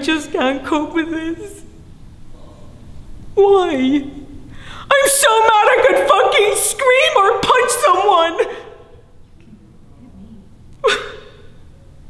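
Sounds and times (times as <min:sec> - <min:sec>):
woman gasping: 0:04.5 - 0:04.9.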